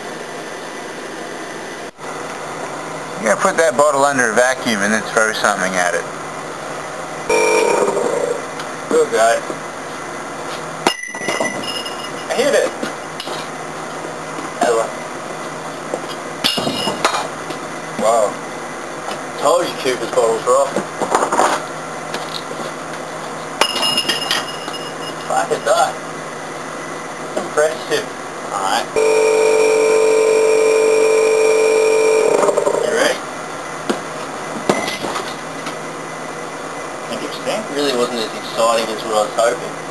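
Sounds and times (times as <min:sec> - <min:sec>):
loud buzzing hum: 0:07.3 - 0:08.4, 0:29.0 - 0:32.8.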